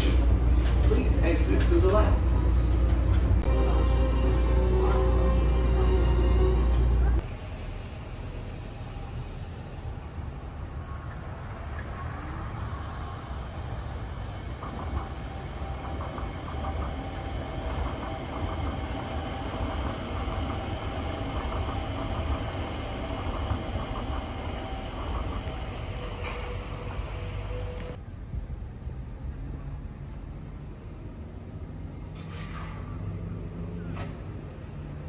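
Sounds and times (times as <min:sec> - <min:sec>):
monorail train rumble: 0:00.0 - 0:35.0
train motor whine: 0:14.4 - 0:28.0.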